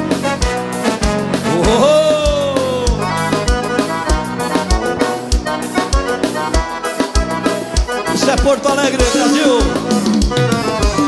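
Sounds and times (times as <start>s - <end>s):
bass drum beat: 0.0s - 6.2s
accordion: 0.0s - 11.0s
dance band playing: 0.0s - 11.0s.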